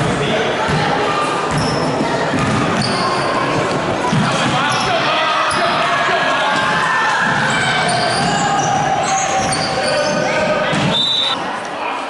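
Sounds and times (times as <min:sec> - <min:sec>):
spectators chattering: 0:00.0 - 0:12.0
basketball bouncing on gym floor: 0:01.5 - 0:04.8, 0:06.5 - 0:11.0
sneaker squeaks: 0:01.5 - 0:05.7, 0:07.4 - 0:11.4.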